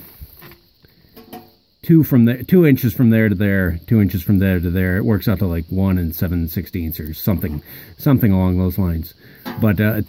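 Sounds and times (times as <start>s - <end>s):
man talking: 1.8s - 10.0s
soft ticks: 7.0s - 7.4s.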